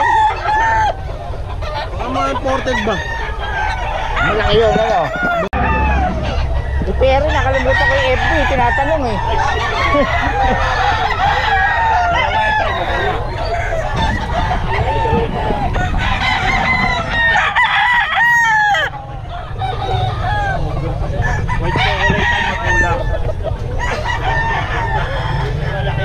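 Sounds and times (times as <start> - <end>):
roosters crowing and clucking: 0.0 - 26.0.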